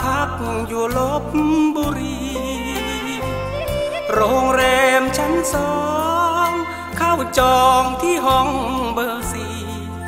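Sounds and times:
band accompaniment with bass: 0:00.0 - 0:10.0
man singing with wavering voice: 0:00.0 - 0:10.0.

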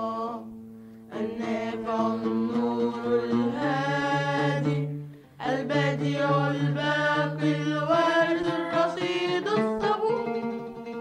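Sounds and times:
religious chant singing: 0:00.0 - 0:10.4.

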